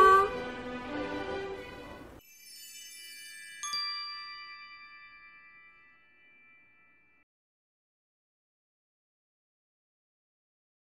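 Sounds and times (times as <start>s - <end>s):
bell-like chime tones: 2.2s - 7.3s.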